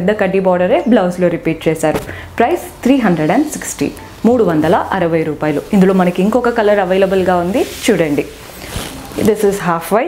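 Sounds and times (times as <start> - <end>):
woman speaking: 0.0 - 10.0
fabric rustling and swishing: 2.8 - 10.0.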